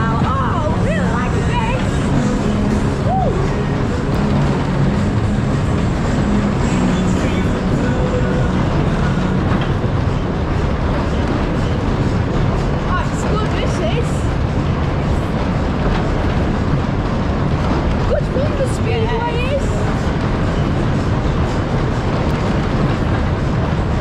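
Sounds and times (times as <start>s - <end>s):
spinning ride rumble: 0.0s - 24.0s.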